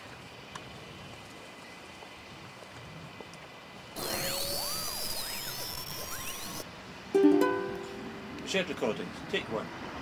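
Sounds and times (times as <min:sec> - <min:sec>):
electronic sweeping tones: 0:04.0 - 0:06.6
steady high tone: 0:04.0 - 0:06.6, 0:07.2 - 0:08.4.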